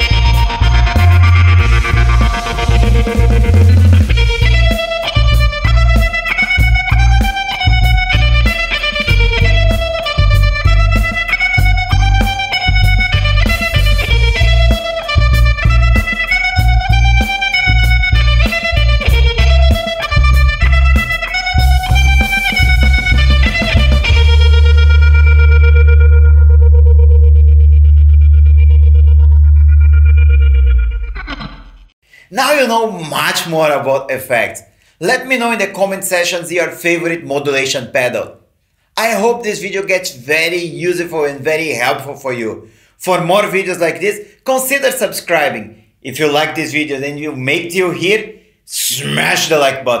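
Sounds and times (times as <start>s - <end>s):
electric guitar with tremolo and reverb: 0.0s - 31.8s.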